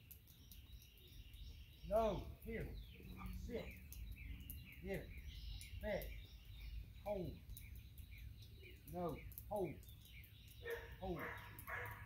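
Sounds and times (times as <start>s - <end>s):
dog barking: 10.6s - 12.0s.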